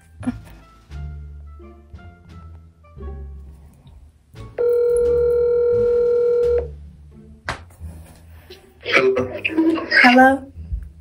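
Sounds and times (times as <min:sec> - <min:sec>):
telephone ringback tone: 0:04.6 - 0:06.7.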